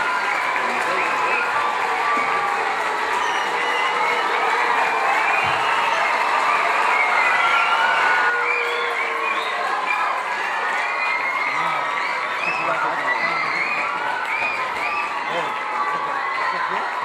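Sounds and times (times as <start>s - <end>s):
crowd cheering and chattering: 0.0s - 17.0s.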